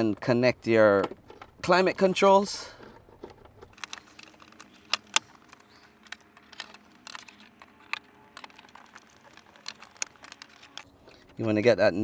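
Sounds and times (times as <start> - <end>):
plastic connector clicks and rattles: 2.8 - 10.9.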